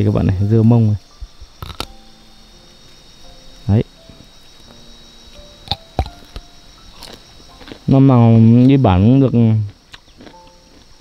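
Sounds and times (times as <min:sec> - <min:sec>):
crickets chirring: 0:00.0 - 0:11.0.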